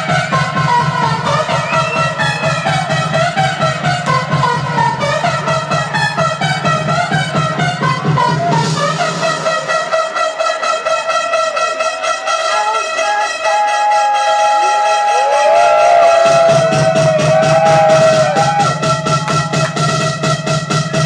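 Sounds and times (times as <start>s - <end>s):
electronic dance music: 0.0s - 21.0s.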